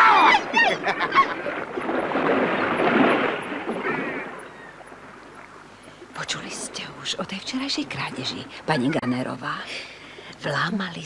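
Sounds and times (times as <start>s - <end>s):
sea surf: 0.0s - 6.8s.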